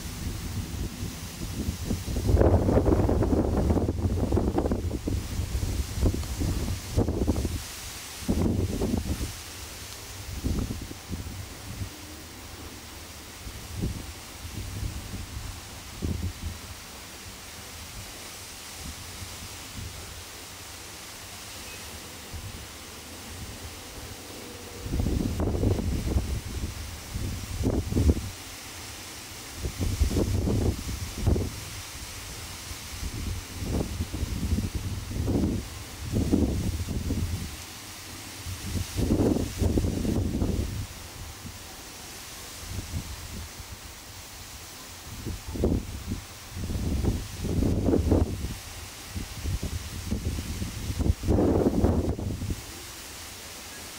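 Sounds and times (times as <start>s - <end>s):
wind buffeting microphone: 0.0s - 9.4s, 10.0s - 12.6s, 13.4s - 16.8s, 24.8s - 28.4s, 29.6s - 31.9s, 32.9s - 37.6s, 38.5s - 41.6s, 45.1s - 52.6s
steady outdoor hiss: 0.0s - 53.9s.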